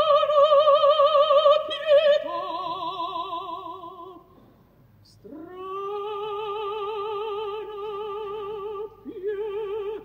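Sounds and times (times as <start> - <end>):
breath: 4.2 - 4.8.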